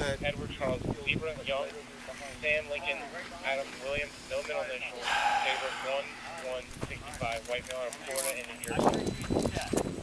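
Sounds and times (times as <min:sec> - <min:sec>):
indistinct voices talking: 0:00.0 - 0:09.9.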